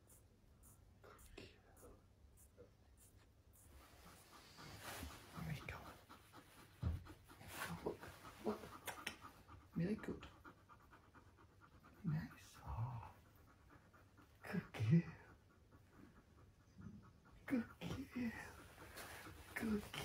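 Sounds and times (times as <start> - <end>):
dog panting: 0.0 - 20.0.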